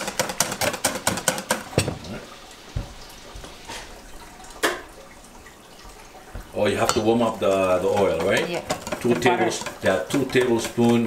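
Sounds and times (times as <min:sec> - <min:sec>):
whisk beating in metal bowl: 0:00.0 - 0:01.9, 0:06.5 - 0:11.0.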